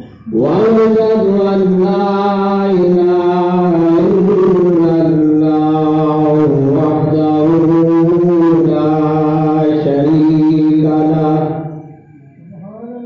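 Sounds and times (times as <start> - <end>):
man chanting: 0.0 - 13.0.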